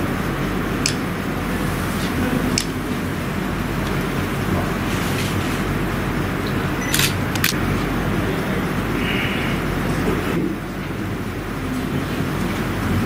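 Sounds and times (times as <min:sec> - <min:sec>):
room noise rumble with hiss: 0:00.0 - 0:13.0
sharp clicks: 0:06.9 - 0:07.6.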